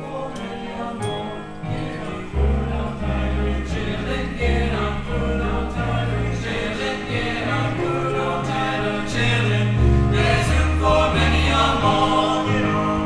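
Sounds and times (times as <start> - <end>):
choir singing over accompaniment: 0.0 - 13.0.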